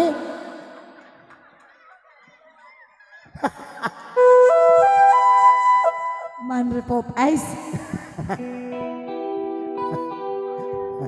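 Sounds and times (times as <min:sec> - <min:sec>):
keyboard flute melody: 0:04.2 - 0:06.7.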